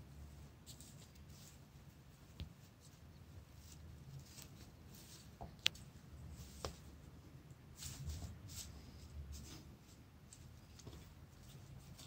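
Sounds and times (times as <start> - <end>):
low room hum: 0.0 - 12.0
rustling grass blades: 0.2 - 7.0.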